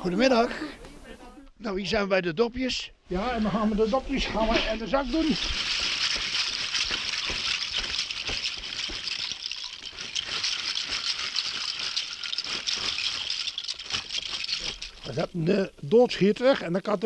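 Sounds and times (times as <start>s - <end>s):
bottle caps clattering: 5.1s - 15.6s.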